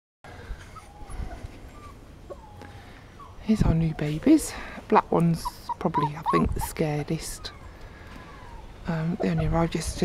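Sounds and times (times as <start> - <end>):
puppies whimpering: 0.4 - 4.7, 5.3 - 10.0.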